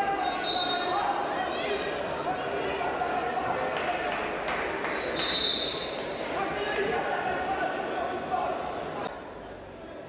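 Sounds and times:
voices calling out in echoing hall: 0.0s - 10.0s
high whistle-like tone: 0.3s - 0.9s, 5.0s - 5.8s.

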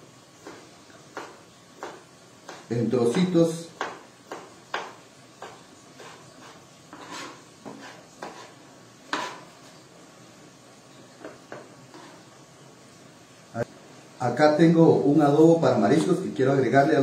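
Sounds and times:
knife tapping cutting board: 0.4s - 5.6s.

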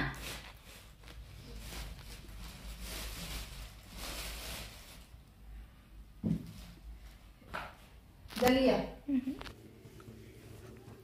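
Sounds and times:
plastic bags rustling and crinkling: 0.0s - 5.6s, 6.2s - 9.6s.

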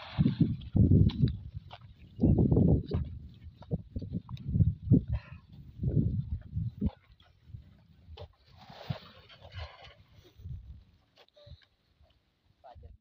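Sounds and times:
low muffled bumps and rumbles: 0.2s - 8.3s.

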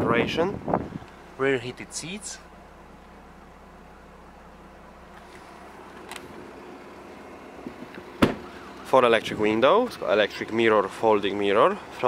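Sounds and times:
sharp knock: 8.2s - 8.5s.

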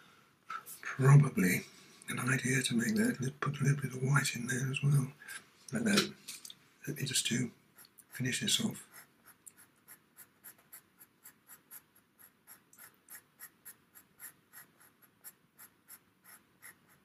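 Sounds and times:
pencil scratching on paper: 7.8s - 17.0s.

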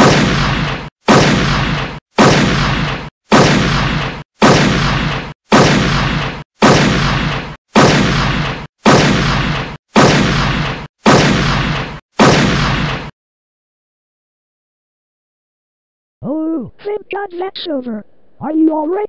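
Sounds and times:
gunshot sound effect: 0.0s - 13.1s.

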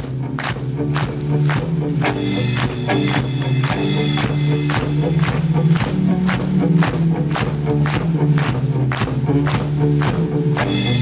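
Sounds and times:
electric bass: 0.0s - 11.0s
live rock band: 0.0s - 11.0s.

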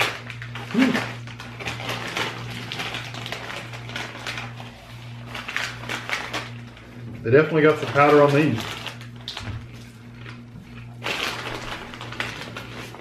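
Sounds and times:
snack bag crinkling: 0.0s - 13.0s.

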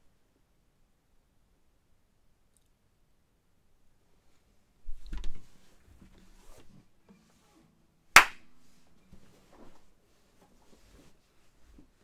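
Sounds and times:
sharp clap: 8.2s - 8.5s.

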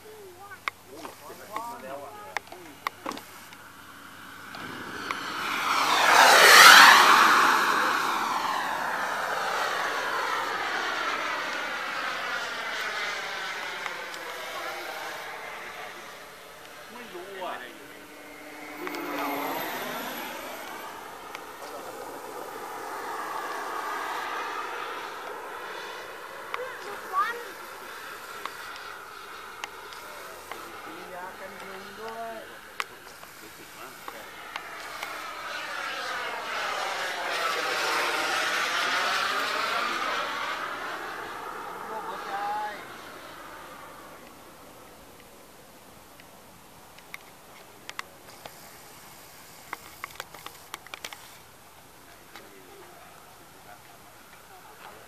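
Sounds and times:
model airplane engine whine: 0.0s - 55.0s.

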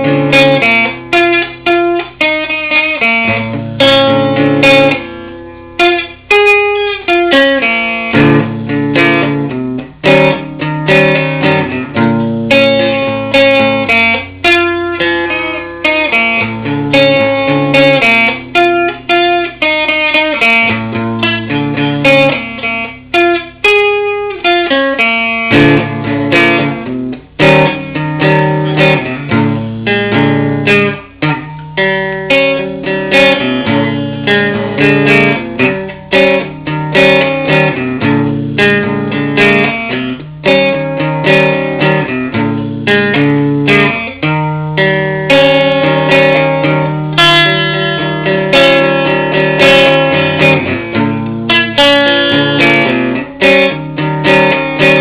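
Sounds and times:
clean electric guitar playing: 0.0s - 55.0s.

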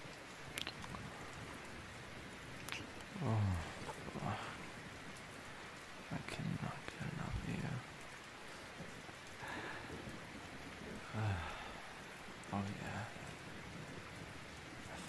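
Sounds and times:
steady rain: 0.0s - 15.0s.

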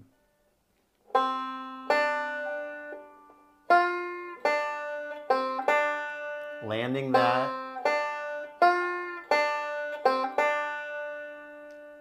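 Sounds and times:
banjo picking: 1.1s - 12.0s.

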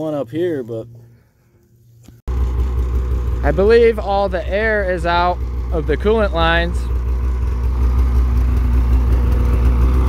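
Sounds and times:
snowmobile engine idling: 2.3s - 10.0s.

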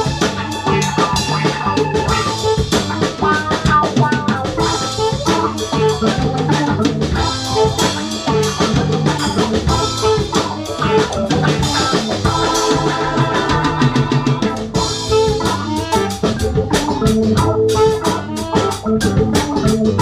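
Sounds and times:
drum kit groove: 0.0s - 20.0s
funk band jamming: 0.0s - 20.0s.

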